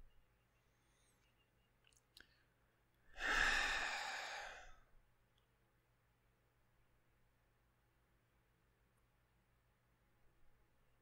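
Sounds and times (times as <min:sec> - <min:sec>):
man sighing: 0:03.2 - 0:04.7.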